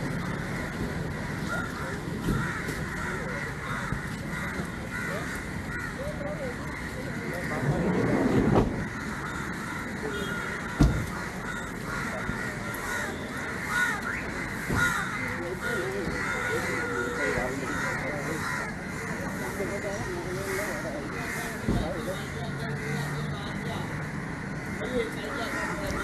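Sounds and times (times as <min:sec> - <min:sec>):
crows cawing: 0:00.0 - 0:07.8, 0:08.6 - 0:26.0
people talking: 0:01.5 - 0:03.8, 0:04.4 - 0:08.8, 0:10.0 - 0:10.9, 0:15.3 - 0:24.0, 0:24.8 - 0:26.0.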